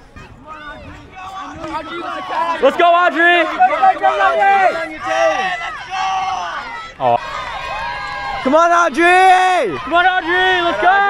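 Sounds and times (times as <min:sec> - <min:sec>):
crowd noise: 0:00.0 - 0:11.0
spectators shouting and cheering: 0:00.0 - 0:11.0.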